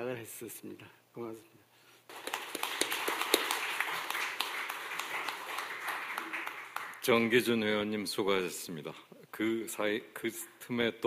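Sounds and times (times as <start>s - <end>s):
audience applauding: 2.1s - 7.4s.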